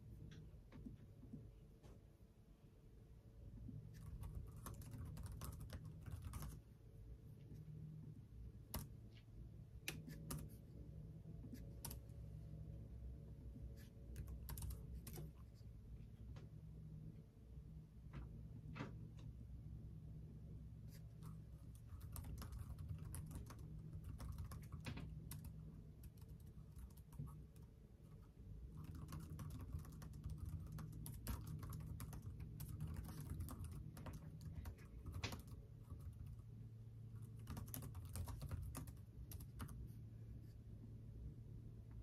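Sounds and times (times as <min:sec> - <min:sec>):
faint low hum: 0:00.0 - 0:42.0
keyboard typing clicks: 0:04.0 - 0:06.6, 0:14.1 - 0:15.5, 0:21.8 - 0:27.4, 0:28.7 - 0:36.4, 0:37.2 - 0:39.8.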